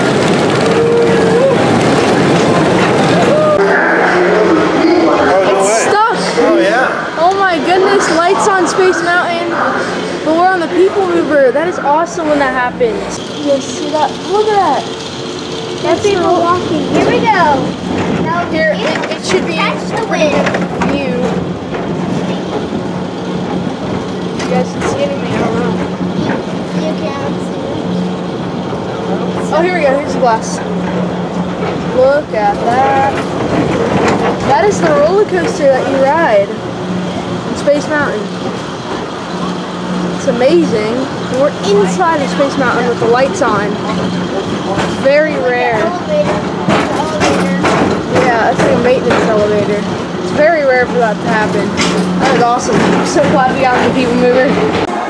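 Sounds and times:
indistinct voices talking: 0:00.0 - 0:55.0
ride train humming along track: 0:00.0 - 0:55.0.

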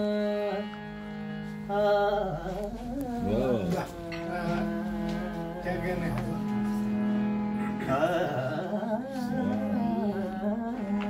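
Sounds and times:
harmonium drone: 0:00.0 - 0:11.0
man singing wordless melody: 0:01.6 - 0:11.0.

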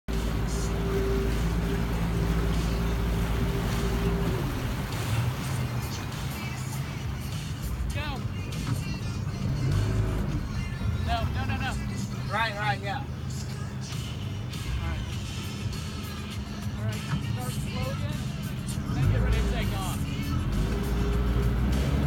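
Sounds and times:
outboard motor humming: 0:00.0 - 0:22.0
water noise: 0:00.0 - 0:22.0.

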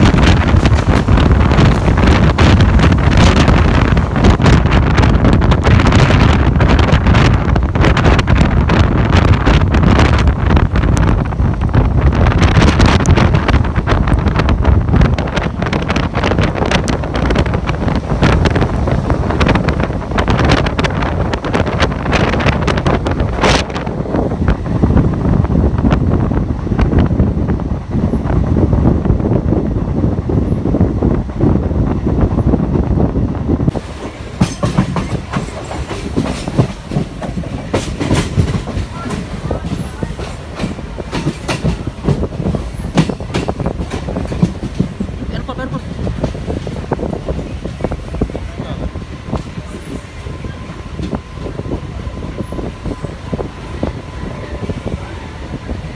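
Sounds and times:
train rumble: 0:00.0 - 0:55.9
wheels clacking over rail joints: 0:33.8 - 0:47.0.

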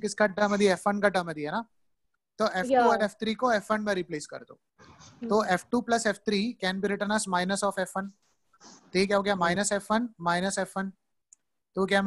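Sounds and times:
person speaking: 0:00.0 - 0:01.5, 0:02.4 - 0:11.0.

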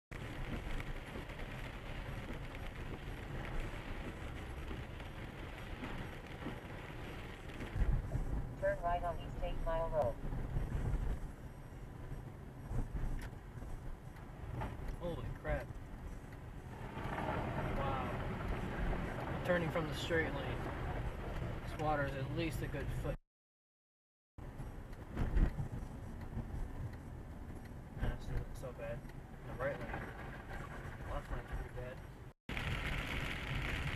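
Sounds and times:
rain on windshield: 0:00.1 - 0:23.2, 0:24.4 - 0:33.9
tyre and road noise: 0:00.1 - 0:23.2, 0:24.4 - 0:33.9
light ticks: 0:12.1 - 0:17.2, 0:24.4 - 0:29.2.

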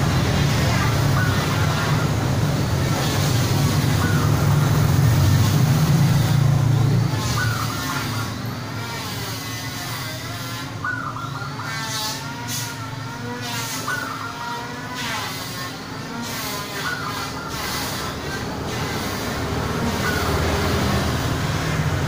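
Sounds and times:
doves cooing: 0:00.0 - 0:22.0.

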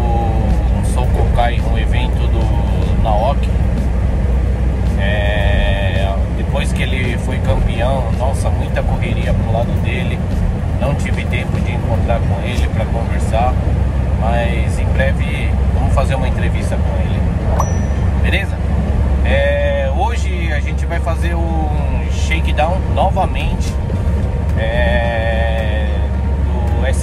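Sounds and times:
man talking: 0:00.0 - 0:03.5, 0:04.9 - 0:13.6, 0:14.2 - 0:17.3, 0:18.2 - 0:18.6, 0:19.2 - 0:23.8, 0:24.6 - 0:27.0
engine and road rumble: 0:00.0 - 0:27.0
brief high-pitched tone: 0:17.6 - 0:18.2.

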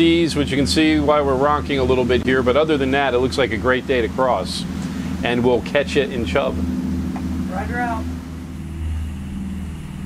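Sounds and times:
boat engines droning: 0:00.0 - 0:10.0.

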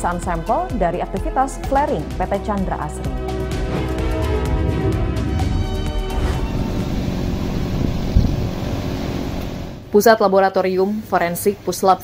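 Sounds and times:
low rumble: 0:03.5 - 0:10.0.

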